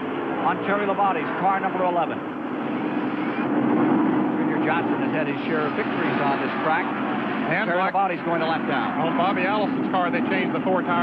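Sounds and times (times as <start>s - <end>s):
stock car engines droning: 0.0s - 11.0s.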